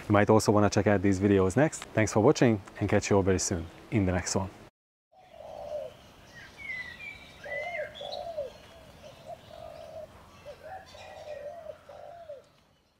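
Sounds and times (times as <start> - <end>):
birds low falling calls: 5.1 - 12.9.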